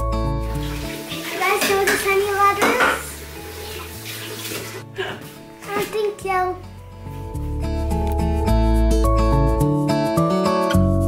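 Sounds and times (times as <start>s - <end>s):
background music: 0.0s - 11.0s
tap running water into sink: 0.4s - 4.8s
child speaking: 1.3s - 3.1s, 5.6s - 6.7s.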